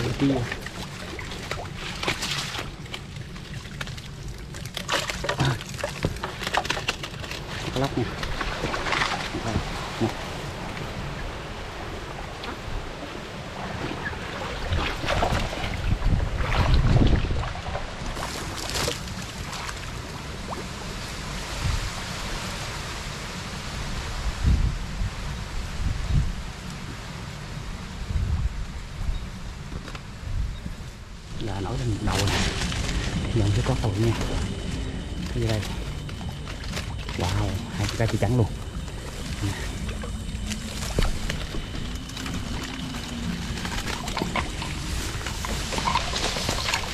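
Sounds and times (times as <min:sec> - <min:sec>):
wind buffeting microphone: 0:07.7 - 0:46.9.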